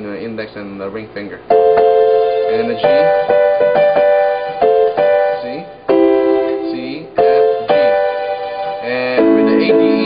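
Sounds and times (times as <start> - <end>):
piano chords: 1.5 - 10.0.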